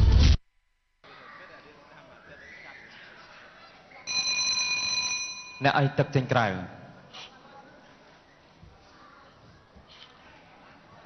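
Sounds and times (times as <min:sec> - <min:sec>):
boxing ring bell ringing: 0:04.1 - 0:06.3.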